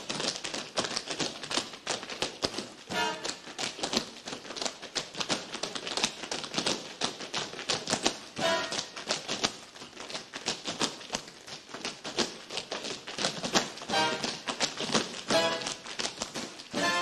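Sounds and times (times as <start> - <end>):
tap shoes clicking on stage: 0.0 - 17.0.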